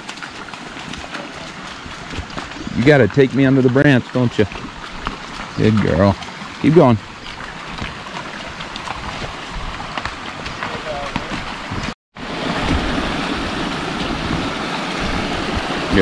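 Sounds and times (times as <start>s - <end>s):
hooves splashing through mud: 0.0s - 16.0s
running stream water: 0.0s - 16.0s.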